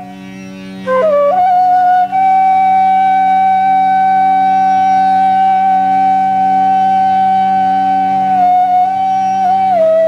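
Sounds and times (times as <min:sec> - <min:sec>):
bamboo flute long note: 0:00.0 - 0:10.0
low drone: 0:00.0 - 0:10.0.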